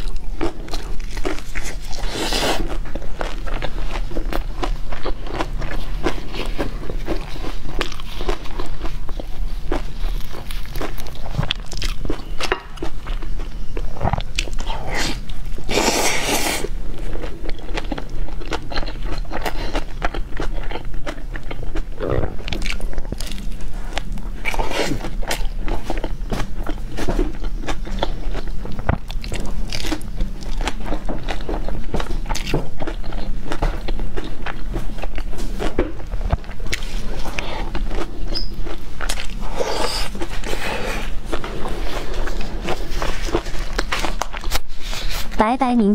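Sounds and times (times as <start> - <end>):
chewing pizza: 0.0 - 45.4
biting into pizza: 14.1 - 45.2.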